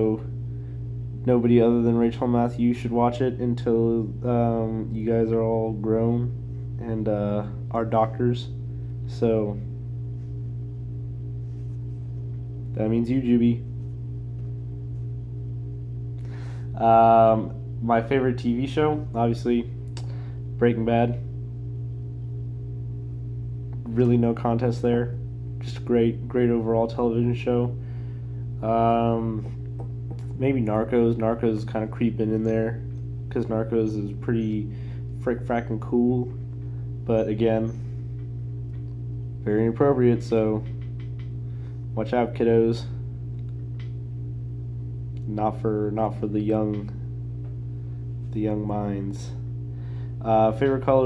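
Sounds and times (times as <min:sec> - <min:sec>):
low hum: 0:00.0 - 0:51.0.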